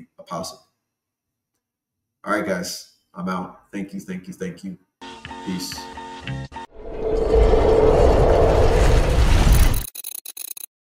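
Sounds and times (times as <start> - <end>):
deep rumble: 6.8 - 9.8
loud rushing noise: 6.8 - 9.8.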